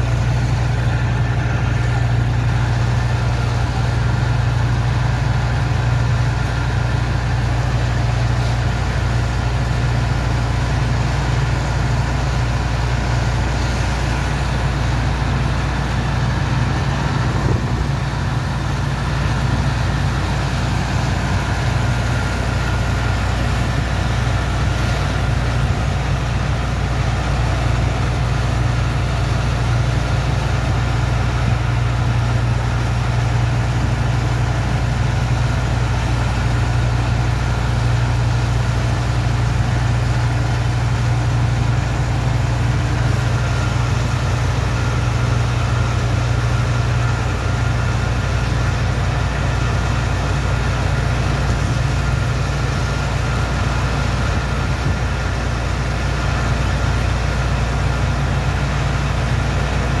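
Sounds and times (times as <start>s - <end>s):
heavy engine droning: 0.0s - 60.0s.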